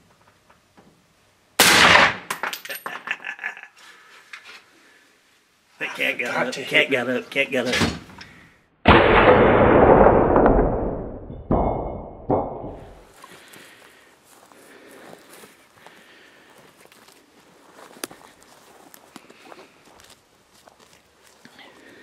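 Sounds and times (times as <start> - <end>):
rifle shot: 1.6 - 2.3, 8.9 - 11.0
sharp bangs: 1.6 - 2.3, 8.8 - 13.1
footsteps in grass: 13.2 - 22.0.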